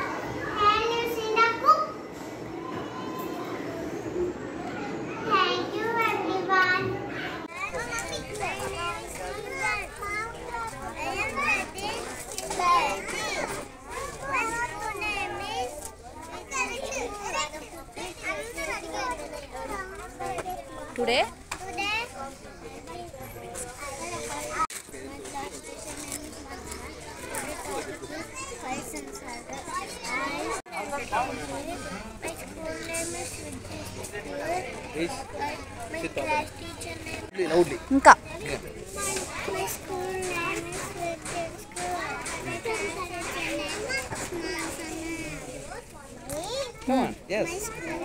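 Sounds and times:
many children chattering: 0.0s - 48.0s.

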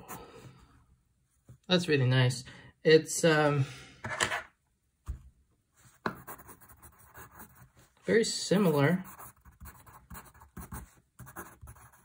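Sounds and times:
pencil writing on paper: 6.1s - 7.7s, 9.0s - 12.0s.

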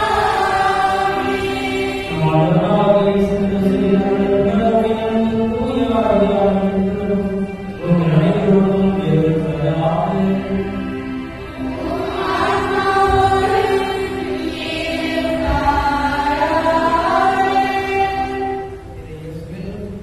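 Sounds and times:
voices singing a chant-like hymn: 0.0s - 19.8s.

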